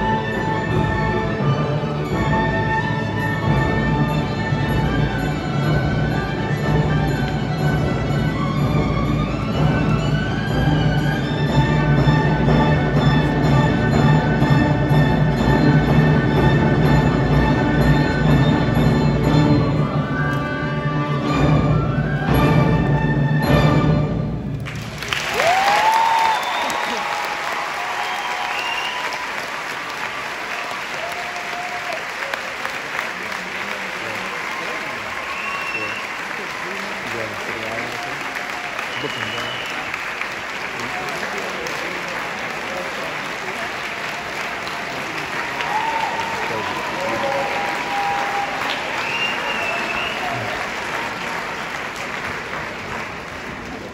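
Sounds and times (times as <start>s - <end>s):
audience applauding: 24.6s - 53.9s
people cheering and calling out: 25.4s - 32.7s, 43.5s - 51.6s.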